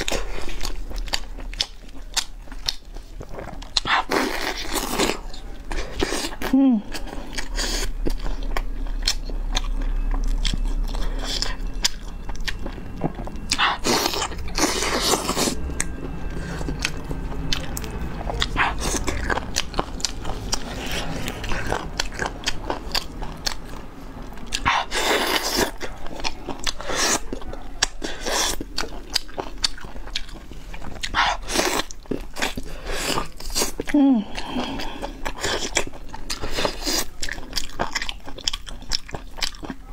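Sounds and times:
chewing with wet smacks: 0.0 - 39.9.

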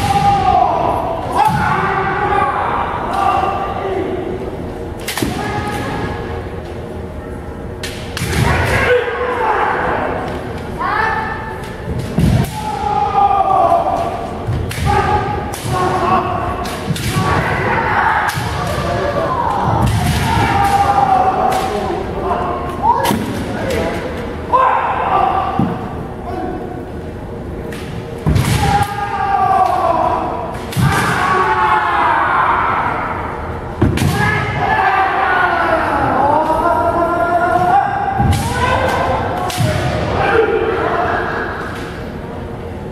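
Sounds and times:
people shouting drawn-out cries: 0.0 - 4.5, 8.2 - 11.6, 12.2 - 23.1, 24.4 - 26.8, 28.3 - 42.2.

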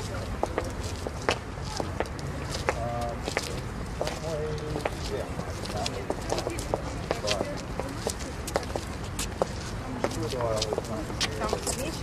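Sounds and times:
footsteps of boots on stone paving: 0.0 - 12.0.

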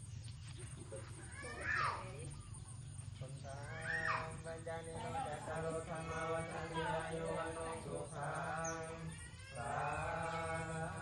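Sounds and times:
monks chanting in unison: 3.2 - 11.0.

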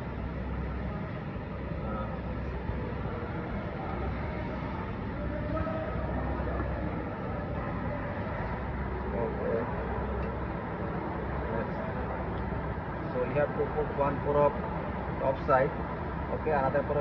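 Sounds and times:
workshop low rumble: 0.0 - 17.0.

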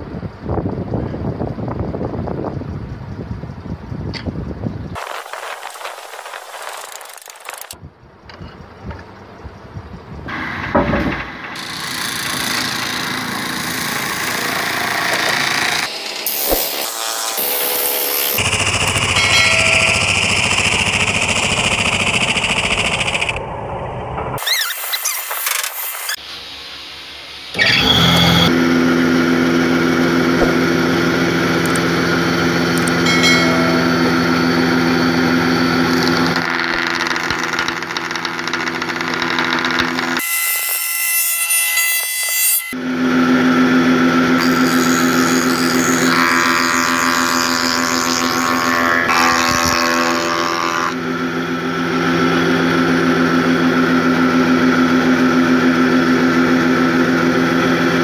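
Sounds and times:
high machine whine: 0.0 - 40.3, 42.7 - 58.0
spindle moulder humming: 26.3 - 40.2.

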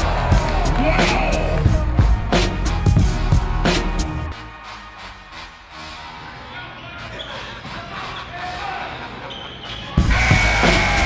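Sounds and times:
loud music with steady beat: 0.0 - 8.9, 10.0 - 11.0.

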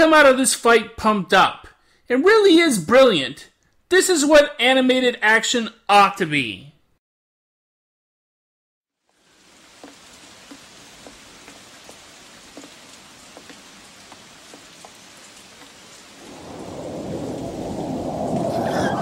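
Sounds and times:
steady rain falling: 9.0 - 19.0
deep rumble: 16.3 - 19.0.

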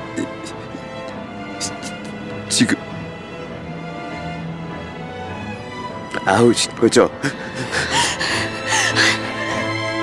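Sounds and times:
background music with held notes: 0.0 - 10.0
person gasping breaths: 7.2 - 9.9.

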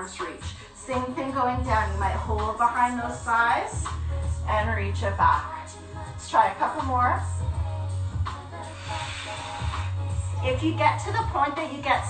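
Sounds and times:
background music: 0.0 - 12.0
person exhaling breathily: 8.8 - 10.1.

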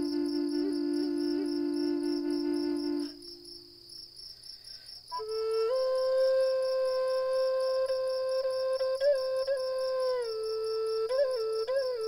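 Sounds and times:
low flute note: 0.0 - 3.5, 5.1 - 12.0
crickets chirping: 0.0 - 12.0.

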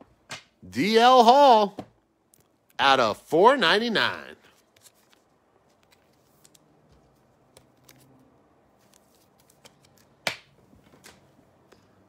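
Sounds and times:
cards being handled: 4.4 - 11.3.

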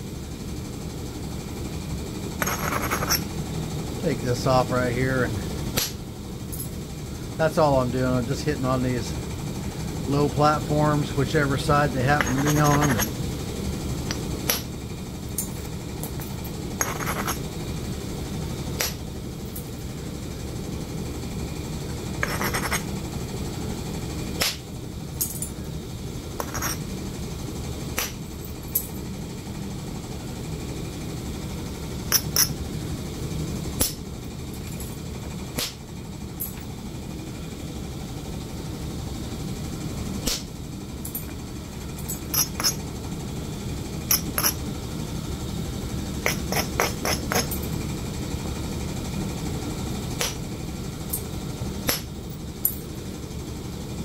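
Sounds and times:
billet striking flint: 5.8 - 6.0, 28.0 - 28.2, 50.2 - 50.4.

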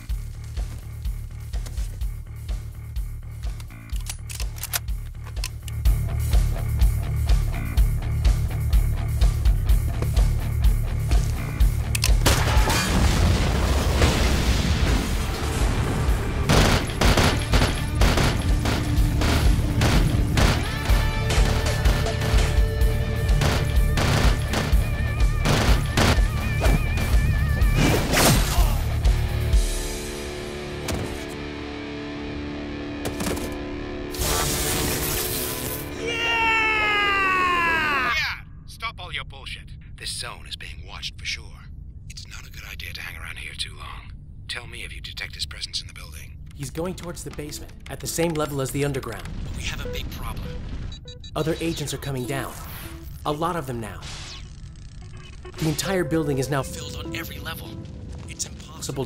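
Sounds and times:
rapid handgun fire: 16.4 - 22.1, 23.2 - 26.4.

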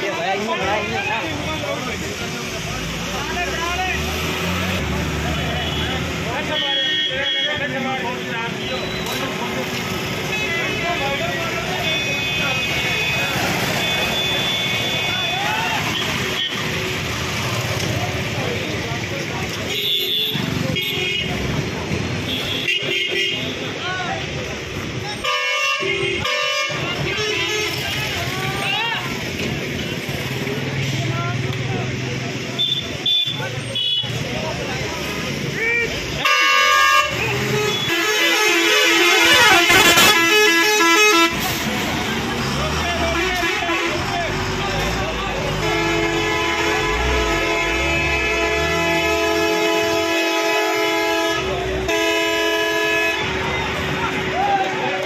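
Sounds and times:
people talking: 0.0 - 49.2, 51.2 - 55.0
busy street market hubbub: 0.0 - 55.0
crowd voices and shouts: 0.0 - 55.0
traffic: 0.0 - 55.0
vehicle horns tooting: 5.2 - 17.7, 19.6 - 21.4, 22.1 - 23.8, 25.1 - 29.0, 32.6 - 34.3, 35.8 - 41.9, 42.8 - 54.5
vehicle horn: 19.7 - 21.3, 25.2 - 27.9, 36.2 - 41.5, 45.5 - 53.4
vehicle engine rumbling: 25.9 - 55.0.

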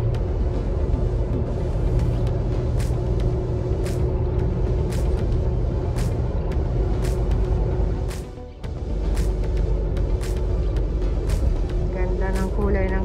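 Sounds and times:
tyre and engine rumble: 0.0 - 13.0.

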